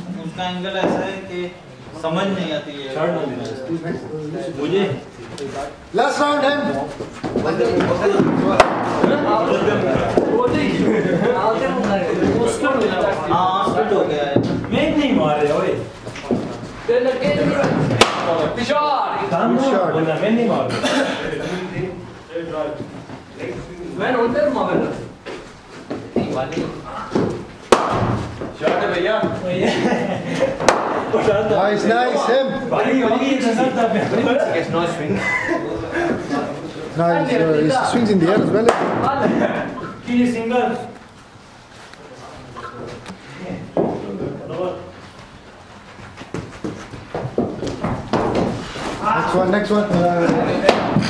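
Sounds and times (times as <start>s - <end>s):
people talking: 0.0s - 25.2s, 26.0s - 41.0s, 48.9s - 51.0s
cricket bat striking ball: 8.1s - 9.3s, 17.9s - 18.5s, 27.2s - 28.8s, 30.6s - 31.2s, 38.6s - 39.1s.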